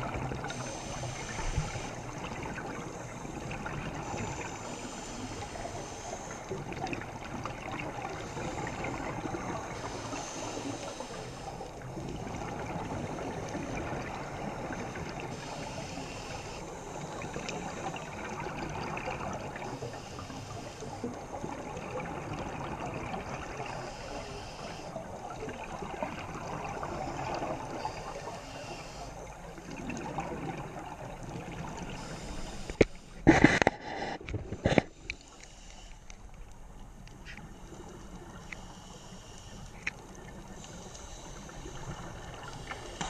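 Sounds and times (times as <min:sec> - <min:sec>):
underwater water noise: 0:00.0 - 0:43.0.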